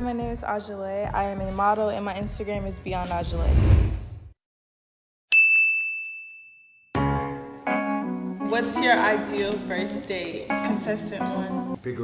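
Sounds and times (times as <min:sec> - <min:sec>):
bright ding: 0:05.3 - 0:07.0.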